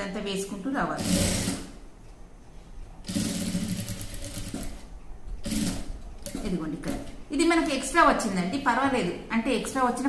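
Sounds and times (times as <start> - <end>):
sewing machine stitching: 0.8 - 1.8, 3.0 - 7.8.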